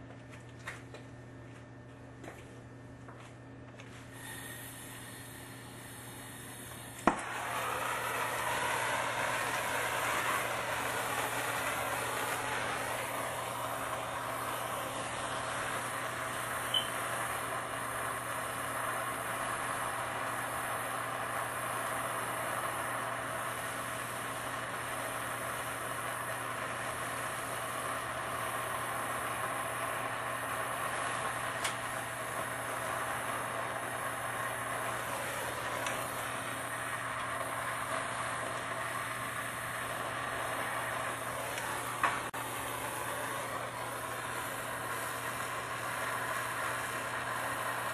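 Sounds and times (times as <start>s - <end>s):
gas torch lighting pop: 4.2s - 47.9s
torch flame rushing: 4.2s - 47.9s.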